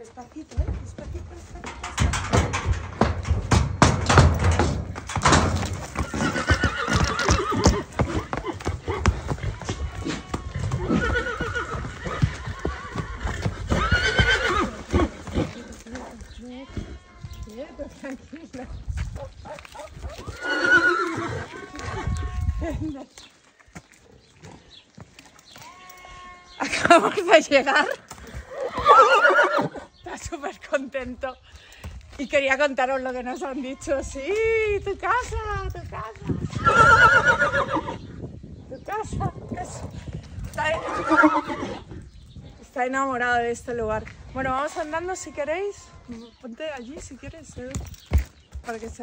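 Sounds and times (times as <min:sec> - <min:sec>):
woman's voice: 0:00.0 - 0:02.4, 0:15.5 - 0:19.4, 0:26.6 - 0:28.0, 0:30.0 - 0:31.4, 0:32.2 - 0:36.4, 0:38.7 - 0:40.0, 0:40.6 - 0:41.0, 0:42.6 - 0:47.8, 0:48.6 - 0:49.0
hooves on metal ramp: 0:00.0 - 0:20.2
horse whinnying: 0:05.2 - 0:15.8, 0:20.2 - 0:22.6, 0:28.4 - 0:29.9, 0:36.4 - 0:38.0, 0:40.6 - 0:41.9.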